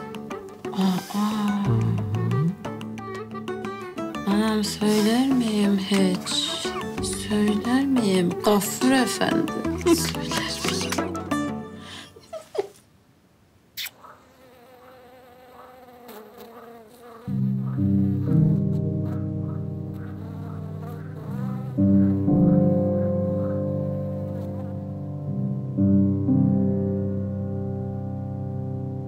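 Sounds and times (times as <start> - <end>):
insect buzzing: 0.0 - 8.1, 13.8 - 22.6, 23.5 - 25.1.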